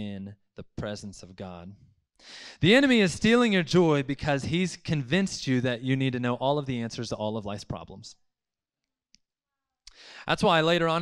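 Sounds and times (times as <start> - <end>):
person speaking: 2.6 - 8.1, 10.2 - 11.0.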